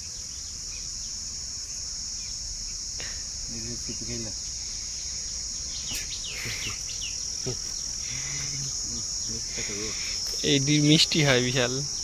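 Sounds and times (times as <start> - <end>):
insects droning: 0.0 - 12.0.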